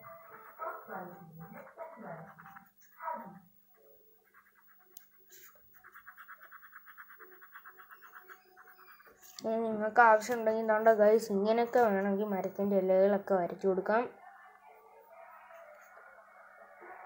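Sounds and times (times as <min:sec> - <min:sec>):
pencil shading on paper: 0:00.0 - 0:12.1.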